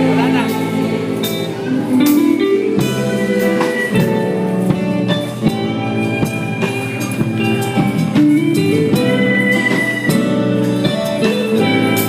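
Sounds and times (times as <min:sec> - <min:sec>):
acoustic guitar: 0:00.0 - 0:12.0
bass guitar: 0:00.0 - 0:12.0
electric guitar: 0:00.0 - 0:12.0
live band playing: 0:00.0 - 0:12.0
violin: 0:00.0 - 0:12.0.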